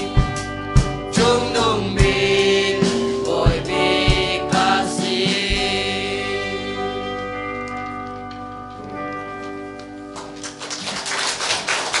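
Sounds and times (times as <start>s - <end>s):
choir singing a chord: 1.1s - 7.2s
audience applause: 9.8s - 12.0s.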